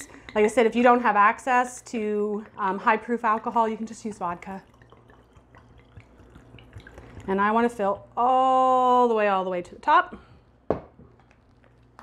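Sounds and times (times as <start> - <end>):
liquid trickling into jar: 1.8 - 8.3
small drips: 1.8 - 8.3, 10.2 - 12.0.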